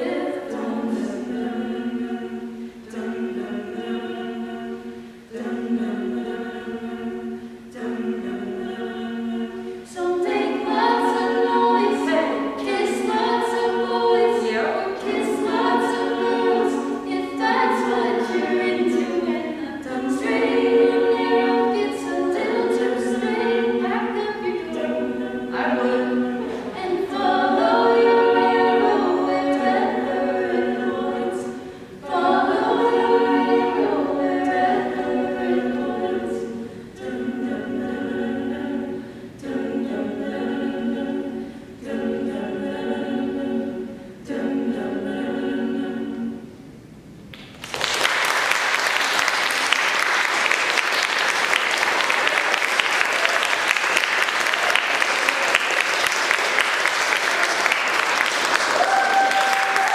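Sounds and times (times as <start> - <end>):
a cappella group singing in harmony: 0.0 - 47.2, 48.3 - 59.9.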